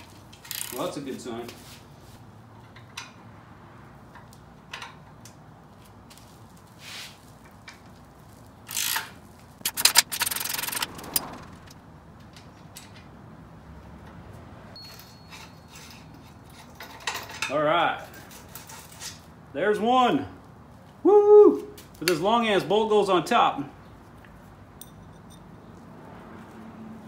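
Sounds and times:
metal scraping and clatter: 0:08.7 - 0:11.8.

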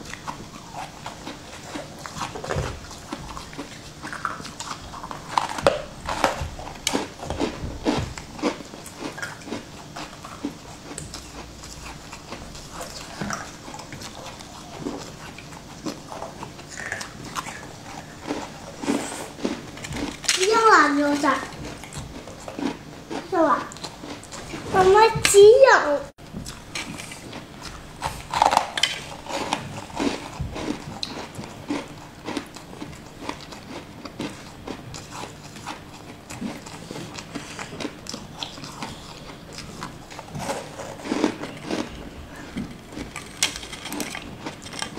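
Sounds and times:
crunching and chewing candy: 0:00.0 - 0:25.4, 0:26.2 - 0:44.9
crisp crunching of sweet: 0:26.5 - 0:44.9.

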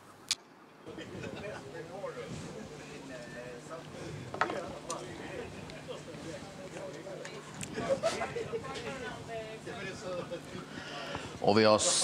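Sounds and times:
faint background voices: 0:00.9 - 0:12.0.

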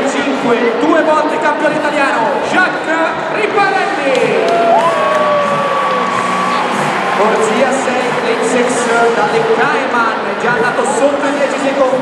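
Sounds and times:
stadium crowd cheering: 0:03.8 - 0:12.0.

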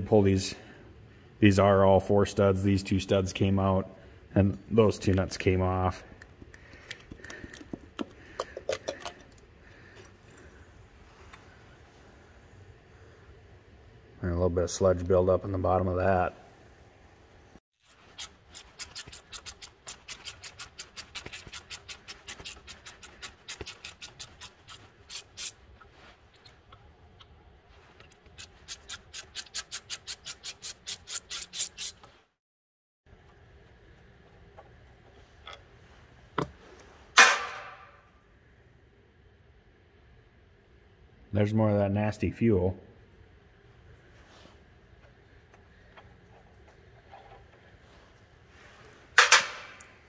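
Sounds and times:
hand ratchet clicking: 0:18.2 - 0:25.5
sharp metallic clank: 0:37.2 - 0:38.0, 0:49.2 - 0:49.8.

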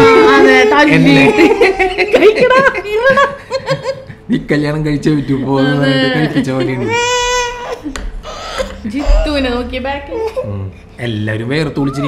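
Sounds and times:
baby crying: 0:00.0 - 0:02.1, 0:06.8 - 0:10.4.

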